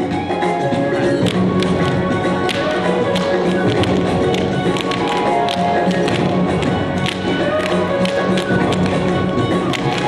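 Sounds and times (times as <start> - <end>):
recital music: 0.0 - 10.0
tap shoes clicking on stage: 1.2 - 10.0.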